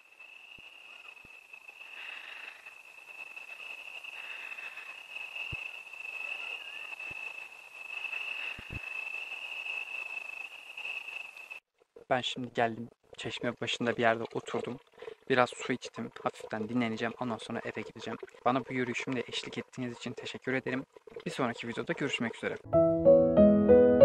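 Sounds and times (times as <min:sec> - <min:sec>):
crickets trilling: 0:00.0 - 0:11.6.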